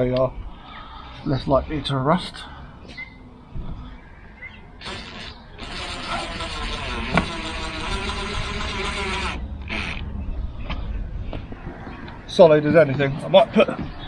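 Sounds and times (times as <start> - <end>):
cordless drill driving screws: 4.8 - 10.0.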